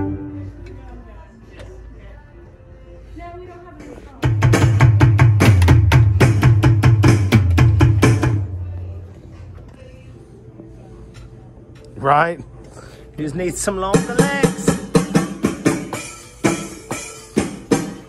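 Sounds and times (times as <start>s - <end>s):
electronic drum kit: 4.2s - 8.8s, 13.8s - 18.0s.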